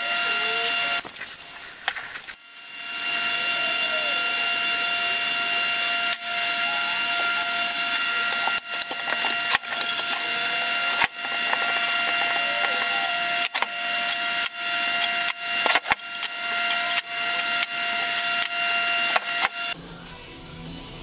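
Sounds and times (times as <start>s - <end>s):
machine running with high whine: 0.0s - 19.8s.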